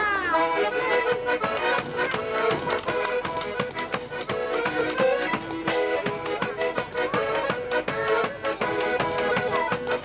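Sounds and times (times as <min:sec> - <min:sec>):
accordion melody: 0:00.0 - 0:10.0
hand drum beating fast rhythm: 0:01.6 - 0:10.0.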